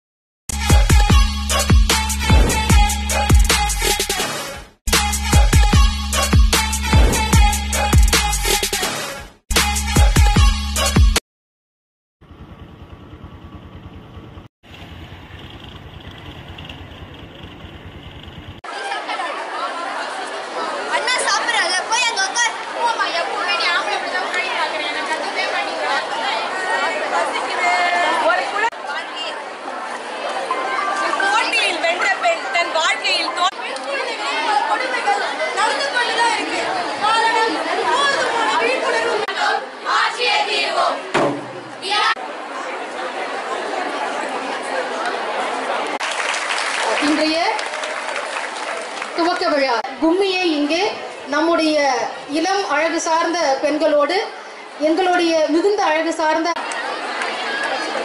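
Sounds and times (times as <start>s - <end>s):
crowd of women chattering: 18.6s - 46.0s, 49.1s - 58.0s.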